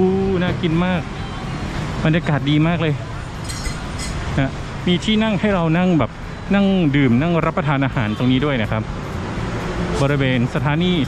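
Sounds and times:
street traffic hum: 0.0s - 11.0s.

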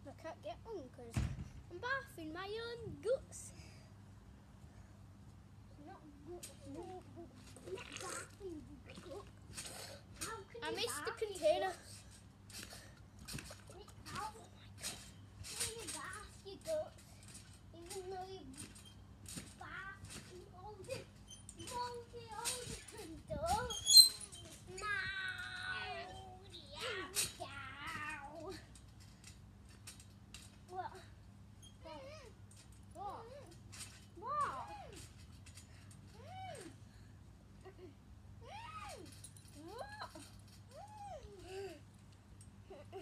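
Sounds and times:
boys' voices: 10.2s - 12.0s.

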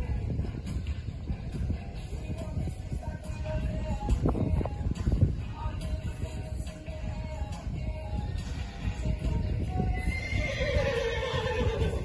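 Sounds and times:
background music with steady beat: 0.0s - 12.0s
horse neighing: 10.0s - 12.0s.

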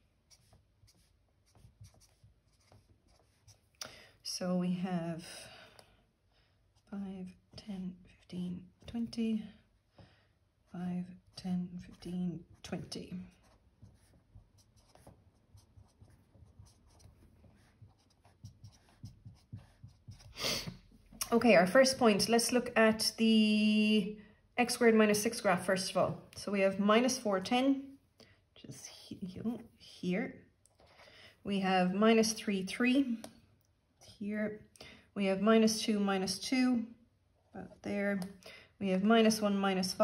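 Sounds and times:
marker pen strokes on whiteboard: 0.0s - 3.8s, 10.7s - 22.6s.

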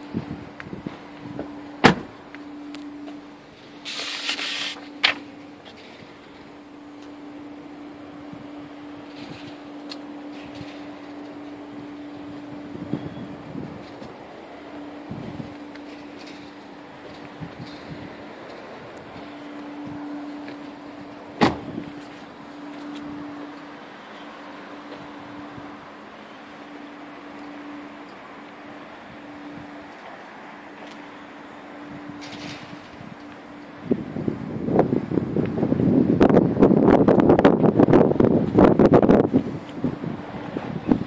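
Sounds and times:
wind buffeting microphone: 0.0s - 2.2s, 10.3s - 20.1s, 33.8s - 41.0s
steady low hum: 0.0s - 41.0s
car door shutting: 0.8s - 2.2s, 21.4s - 22.3s.

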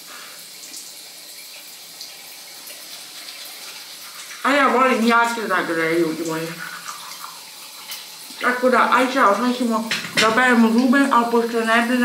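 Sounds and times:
tap water running into sink: 0.0s - 12.0s
person speaking: 4.4s - 6.8s, 8.3s - 12.0s.

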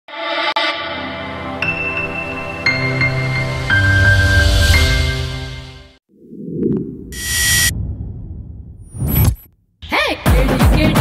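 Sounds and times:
low rumbling whoosh: 6.2s - 9.5s.

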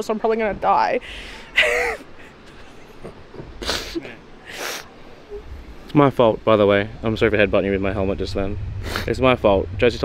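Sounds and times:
woman laughing: 1.5s - 4.2s.

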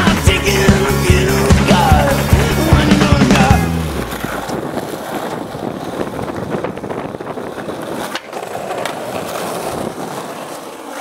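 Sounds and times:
skateboard rolling on concrete: 0.0s - 11.0s.

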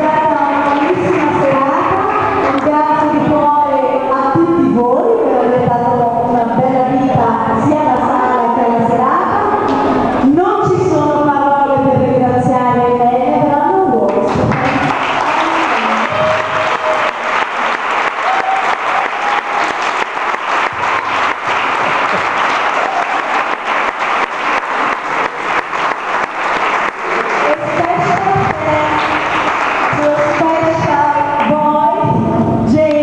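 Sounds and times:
crowd clapping: 0.0s - 2.8s, 14.1s - 31.6s.

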